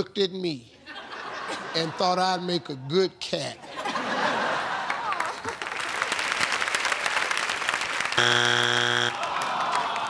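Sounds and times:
hands clapping: 4.9 - 8.2
game-show buzzer: 8.2 - 9.3.

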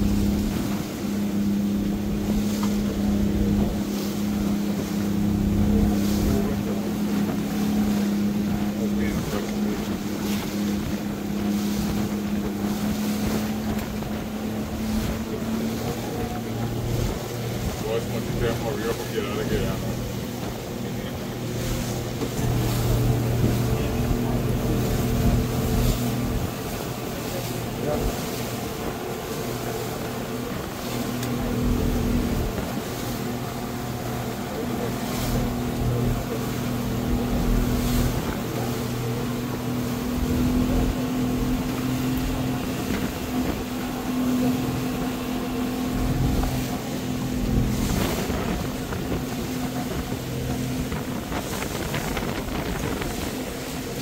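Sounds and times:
speedboat engine running: 0.0 - 54.0
water rushing against hull: 0.0 - 54.0
wind: 0.0 - 54.0.

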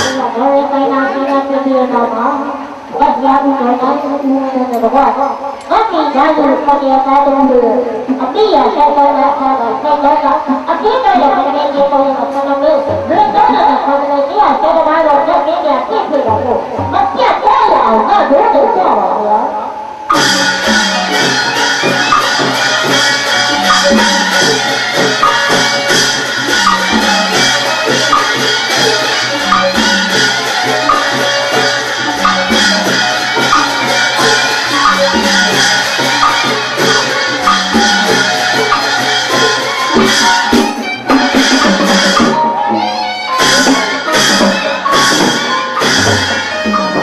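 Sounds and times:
drums beating quickly: 0.0 - 1.2, 10.3 - 14.8, 16.1 - 18.1, 20.1 - 47.0
percussion ensemble playing: 0.0 - 47.0.

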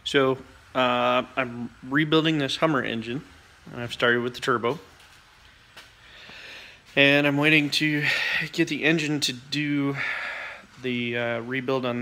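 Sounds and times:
man speaking: 0.0 - 4.9, 6.9 - 12.0
soft intake of breath: 5.9 - 7.0, 8.0 - 8.6, 9.8 - 10.9.

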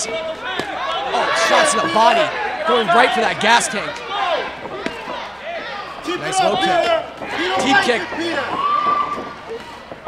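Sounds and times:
men calling out: 1.0 - 4.5.

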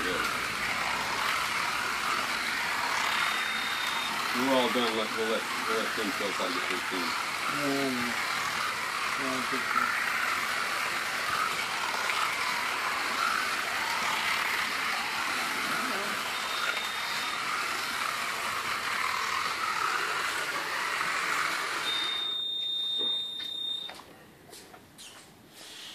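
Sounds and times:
slot car electric motors whining: 0.0 - 23.6
long steady beep: 3.1 - 4.8, 16.2 - 17.5, 21.8 - 24.0
short high beep: 21.9 - 24.0.

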